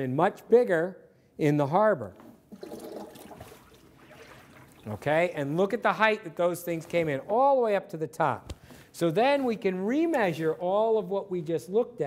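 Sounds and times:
faint water washing: 2.5 - 5.4.

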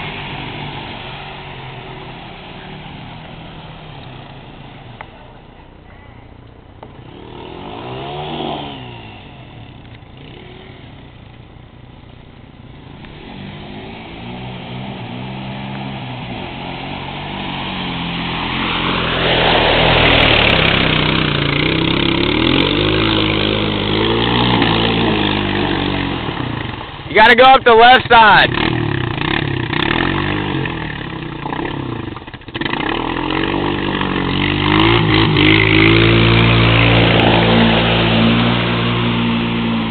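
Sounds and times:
atv engine revving: 0.0 - 39.9
rushing noise: 12.7 - 28.8.

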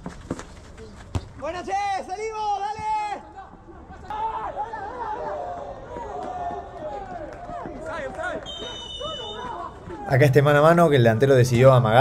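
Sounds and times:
players shouting: 1.4 - 11.6.

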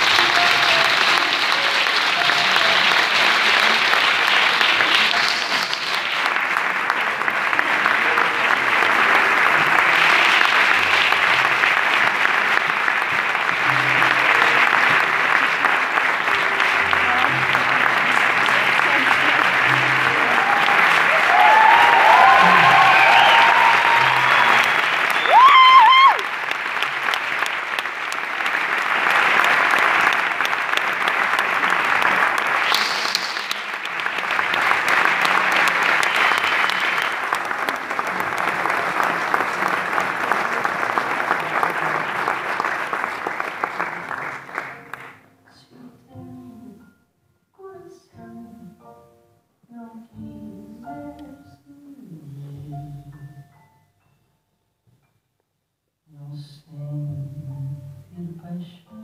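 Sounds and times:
audience applauding: 0.0 - 45.3
high whistle: 32.7 - 33.6.

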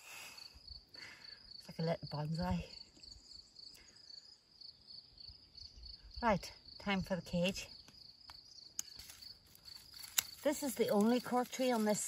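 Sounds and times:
high-pitched insect chirring: 6.7 - 12.0.

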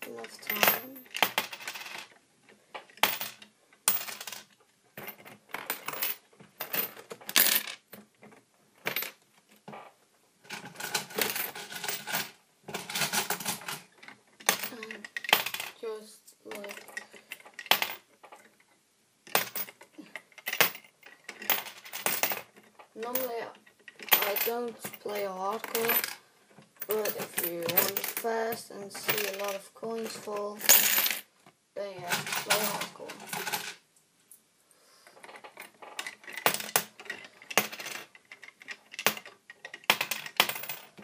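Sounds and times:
coins clinking: 0.0 - 2.1, 3.0 - 7.9, 8.8 - 9.2, 10.5 - 15.8, 16.5 - 18.0, 19.3 - 26.2, 26.8 - 31.3, 32.0 - 33.8, 35.3 - 41.0.

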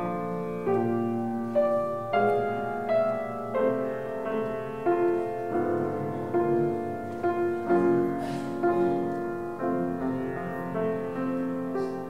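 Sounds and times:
slow quiet piano chords: 0.0 - 12.0.

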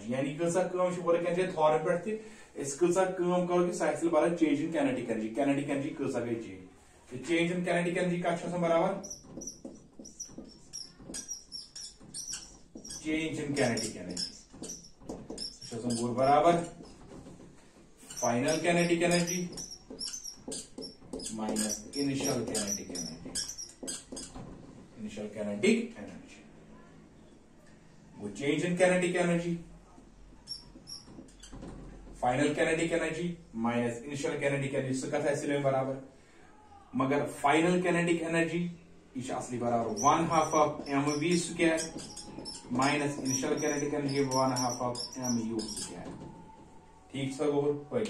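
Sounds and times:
marker squeaking on whiteboard: 7.1 - 25.2, 28.8 - 33.1, 39.2 - 47.5
marker tip scratching board: 8.3 - 24.4, 30.4 - 31.7, 39.8 - 46.0.

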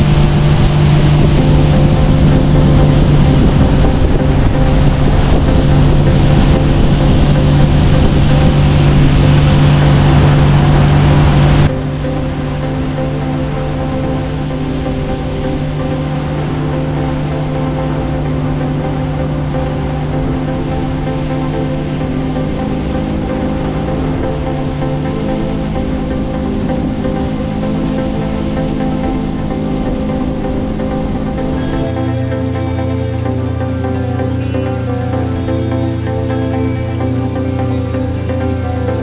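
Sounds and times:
background music: 0.0 - 39.0
boat engine hum: 0.0 - 39.0
wind buffeting microphone: 0.0 - 39.0.

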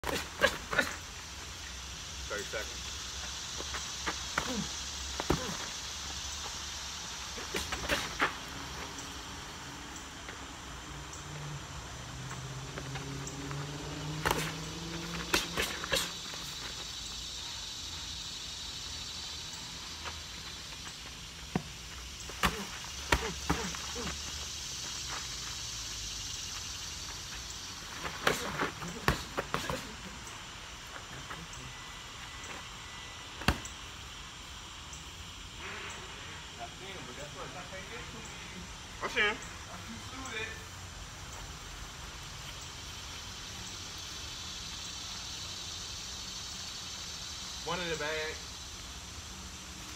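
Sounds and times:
high background hiss: 0.0 - 49.9.

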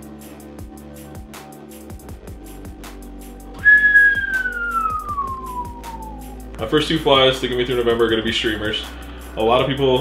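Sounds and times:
background music with steady beat: 0.0 - 10.0
person whistling a sliding note: 3.6 - 6.5.

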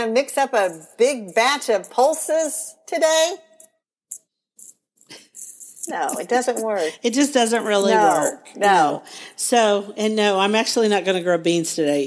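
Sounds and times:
person talking: 0.0 - 3.4, 5.2 - 10.4
woman speaking: 0.0 - 3.4, 5.8 - 11.3.

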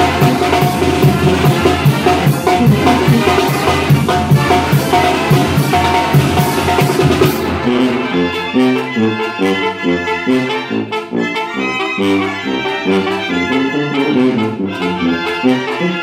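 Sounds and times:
bass drum: 0.0 - 8.1
snare drum: 0.0 - 8.8
brass band playing: 0.0 - 16.0.

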